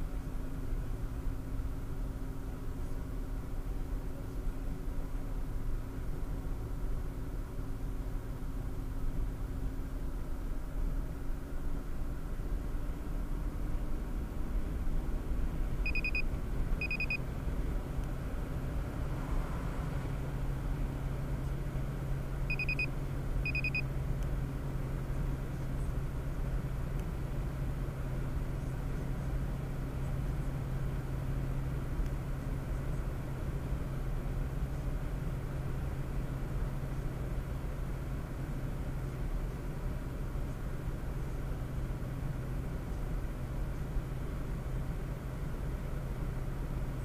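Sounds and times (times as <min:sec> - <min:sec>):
car engine and road noise: 0:00.0 - 0:47.0
short high electronic beeps: 0:15.9 - 0:17.2, 0:22.5 - 0:22.9, 0:23.5 - 0:23.8.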